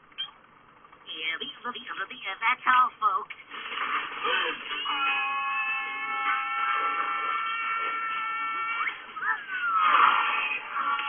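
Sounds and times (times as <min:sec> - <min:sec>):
held high chord on tv speaker: 0:03.8 - 0:11.0.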